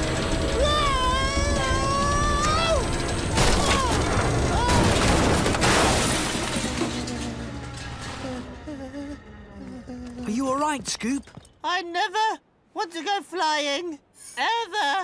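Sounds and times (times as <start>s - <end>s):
cartoon crashing impacts: 3.4s - 8.6s.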